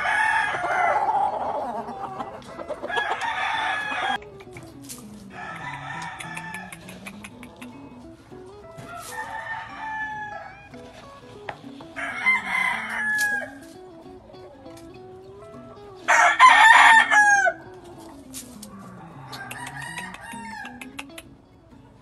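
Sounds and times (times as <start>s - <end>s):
roosters crowing: 0.0s - 4.2s, 5.1s - 7.8s, 8.8s - 21.0s.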